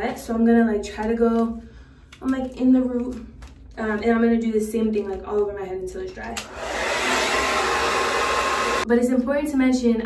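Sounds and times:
hair dryer blowing: 6.4s - 8.9s.

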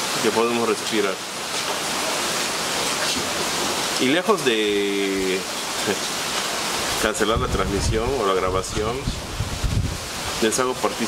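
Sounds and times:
wind blowing: 1.2s - 11.0s.

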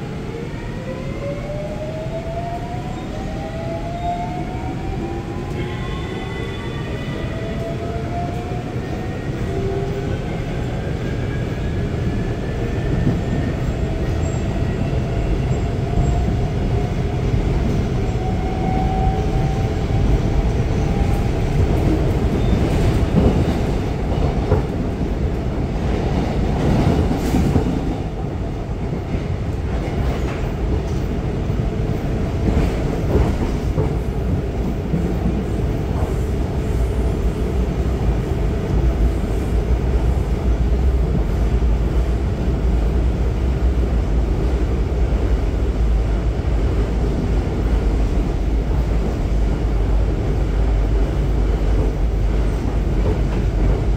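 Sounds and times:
train running rumble: 12.0s - 53.9s.

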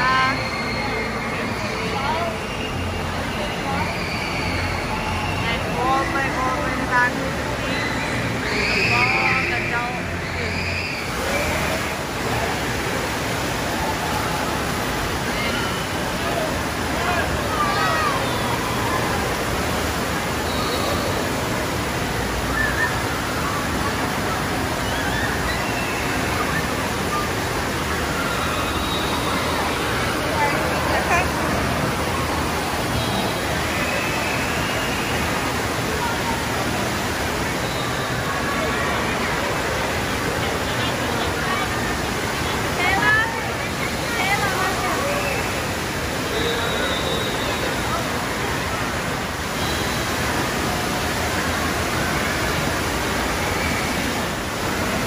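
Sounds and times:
rushing and splashing water: 0.0s - 55.0s.

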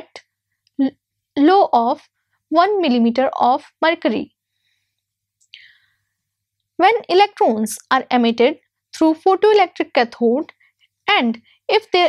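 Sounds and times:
woman speaking: 0.8s - 4.3s, 6.8s - 10.5s, 11.1s - 12.0s
faint breath intake: 4.6s - 6.1s.

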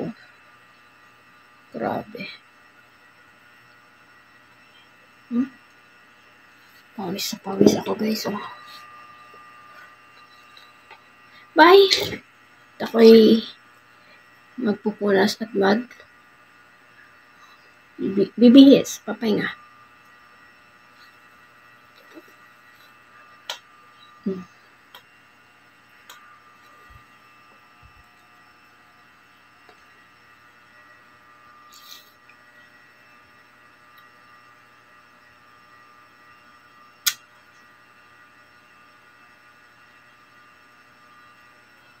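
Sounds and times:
faint room hum: 0.0s - 42.0s
sharp click: 37.0s - 37.2s.

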